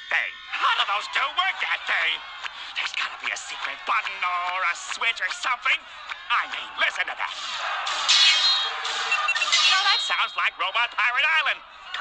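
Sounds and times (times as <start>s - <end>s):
falling zaps: 7.4s - 9.9s
high electronic beeps: 8.1s - 10.5s.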